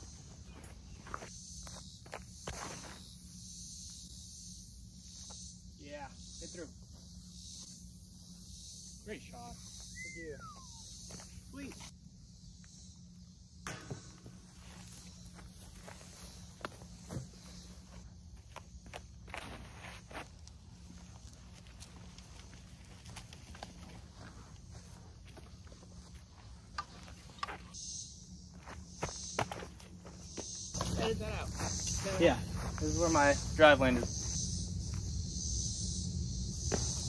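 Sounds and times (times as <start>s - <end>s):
insects chirring: 0.0s - 37.0s
footsteps on dry grass: 29.5s - 33.4s.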